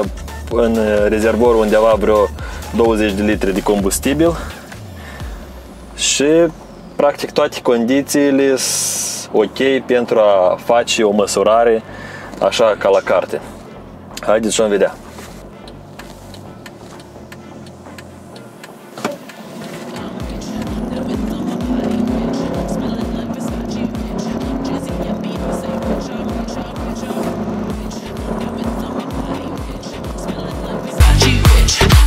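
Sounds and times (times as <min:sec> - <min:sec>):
electronic dance music: 0:00.0 - 0:07.0, 0:12.8 - 0:32.0
diesel engine accelerating: 0:00.0 - 0:32.0.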